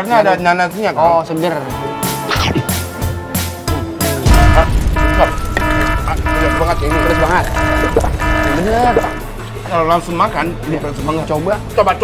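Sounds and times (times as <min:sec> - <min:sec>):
deep electronic hit: 0:04.2 - 0:09.4
pulsing alarm-like tone: 0:04.3 - 0:09.4.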